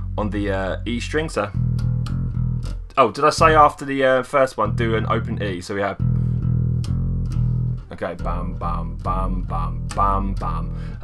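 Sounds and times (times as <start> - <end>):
electric bass playing heavy riff: 0.0 - 11.0.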